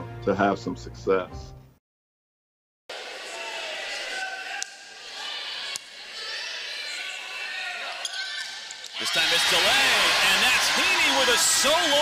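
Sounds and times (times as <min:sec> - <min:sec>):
crowd voices din: 0:02.9 - 0:12.0.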